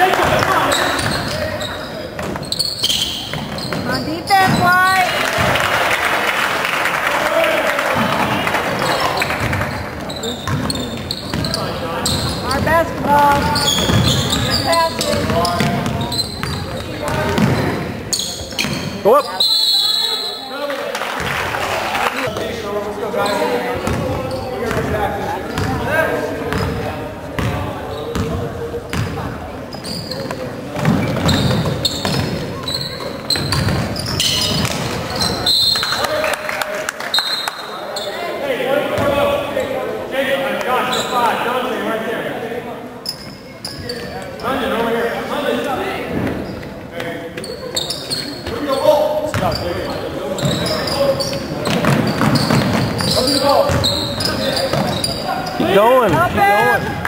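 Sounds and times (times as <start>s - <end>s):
voices and shouts: 3.8s - 5.8s, 53.0s - 57.0s.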